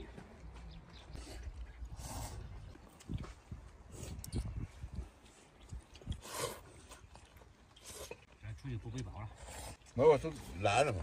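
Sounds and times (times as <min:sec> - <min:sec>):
eating mouth sounds: 0:03.9 - 0:10.0.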